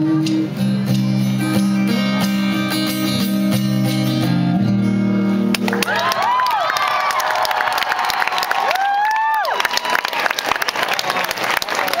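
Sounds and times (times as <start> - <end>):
audience clapping: 5.5 - 12.0
crowd whooping: 5.8 - 12.0.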